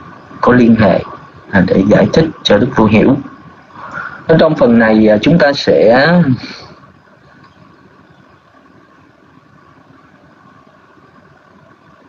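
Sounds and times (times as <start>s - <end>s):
open microphone hiss: 0.0s - 12.0s.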